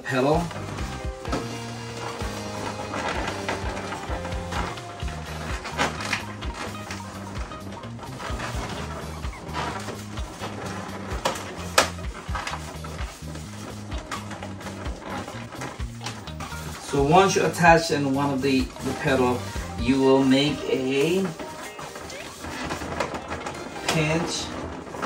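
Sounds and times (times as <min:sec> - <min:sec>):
balloons squeaking and rubbing: 0:00.0 - 0:25.0
background music with bass line: 0:00.3 - 0:21.4.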